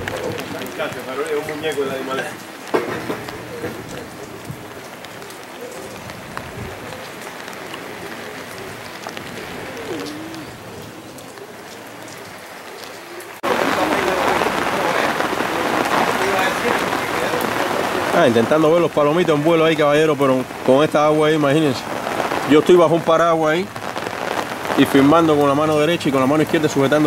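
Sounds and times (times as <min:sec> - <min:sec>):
rain pattering on umbrella: 0:00.0 - 0:27.0
steady rain falling: 0:00.0 - 0:27.0.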